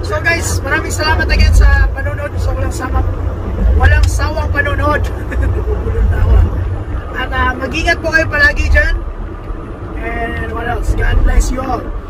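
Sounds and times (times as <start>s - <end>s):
truck cab low rumble: 0.0s - 12.0s.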